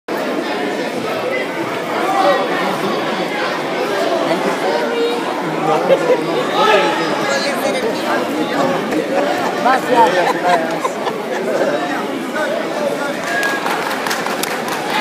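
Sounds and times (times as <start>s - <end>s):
crowd chattering: 0.1s - 15.0s.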